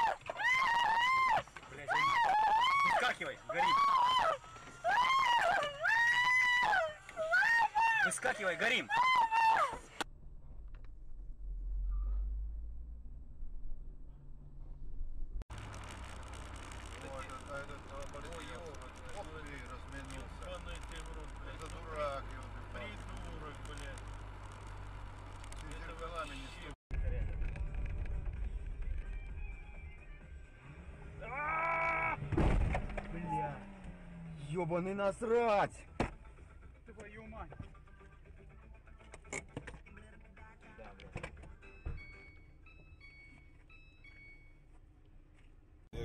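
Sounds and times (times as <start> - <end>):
car driving drone: 9.9 - 35.4.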